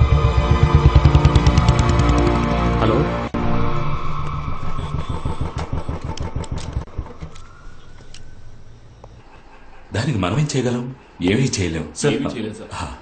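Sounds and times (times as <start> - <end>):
motorcycle engine throbbing: 0.0 - 2.8, 3.4 - 9.3.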